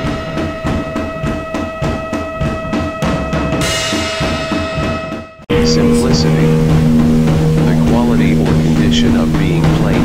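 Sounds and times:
drum music: 0:00.0 - 0:10.0
voices: 0:05.5 - 0:06.8, 0:07.6 - 0:10.0.

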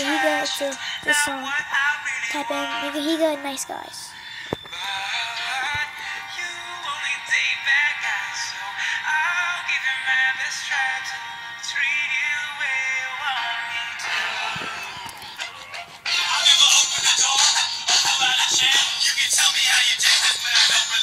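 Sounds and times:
pop song from a device: 0:00.0 - 0:21.0.

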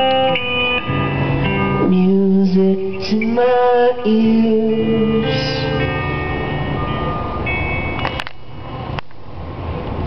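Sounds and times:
held instrument notes: 0:00.0 - 0:08.9.

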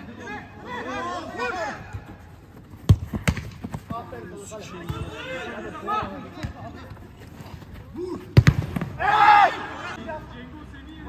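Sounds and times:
football struck thud: 0:02.8 - 0:03.8, 0:08.4 - 0:09.0
men shouting: 0:09.0 - 0:10.0.

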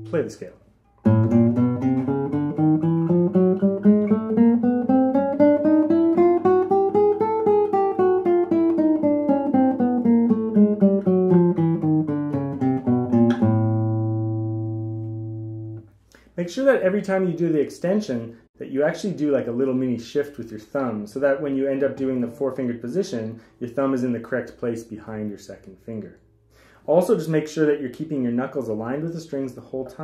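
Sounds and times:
classical guitar playing scale: 0:00.0 - 0:16.0, 0:21.6 - 0:24.2.

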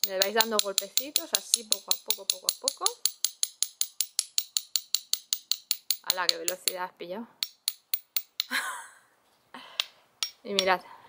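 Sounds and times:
spoon tapping on seashell: 0:00.0 - 0:06.8, 0:07.4 - 0:08.5.

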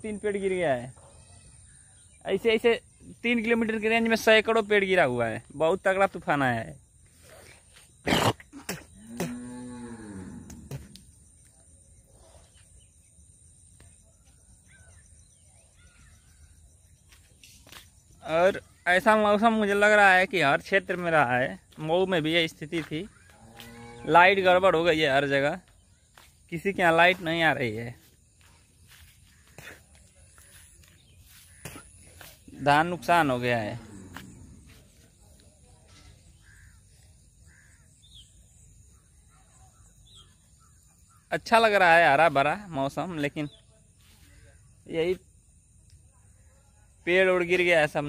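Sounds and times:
faint bird calls: 0:07.1 - 0:19.2, 0:22.8 - 0:24.1, 0:33.7 - 0:41.5
faint short bird calls: 0:35.9 - 0:41.3.

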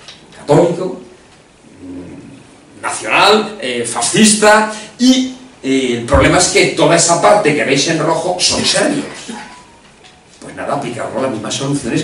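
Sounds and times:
faint low hum: 0:00.0 - 0:12.0
man speaking: 0:00.4 - 0:09.6, 0:10.4 - 0:12.0.

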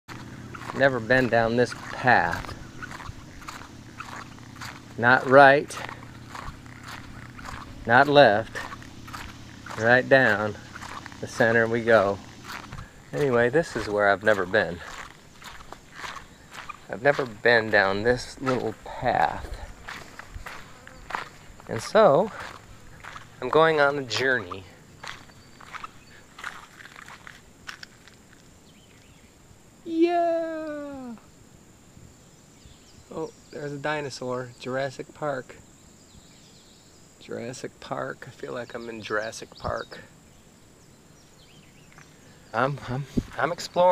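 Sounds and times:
outdoor background noise: 0:00.0 - 0:43.9
footsteps on asphalt: 0:00.1 - 0:29.2
person speaking: 0:00.6 - 0:02.7, 0:04.8 - 0:15.1, 0:16.6 - 0:19.8, 0:21.6 - 0:22.6, 0:23.4 - 0:24.8, 0:29.8 - 0:31.3.

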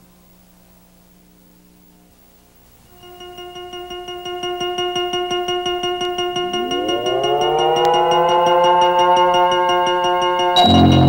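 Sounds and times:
synthesizer logo music: 0:03.0 - 0:11.0.

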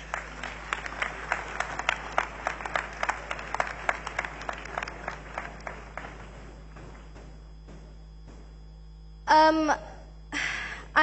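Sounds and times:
congregation applauding: 0:00.0 - 0:07.5.

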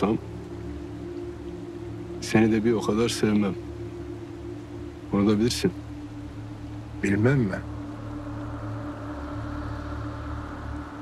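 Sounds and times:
low drone with held tone: 0:00.0 - 0:11.0.

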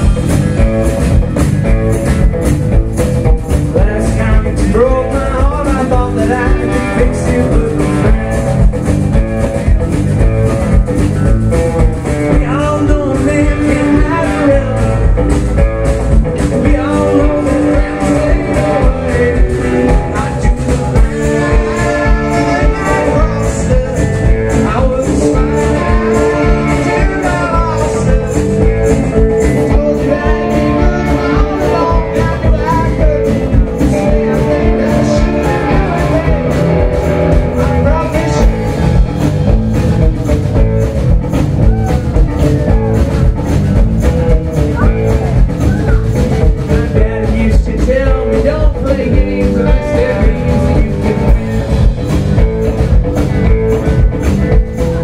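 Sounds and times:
bending guitar notes: 0:00.0 - 0:55.0
blues-rock band playing: 0:00.0 - 0:55.0.

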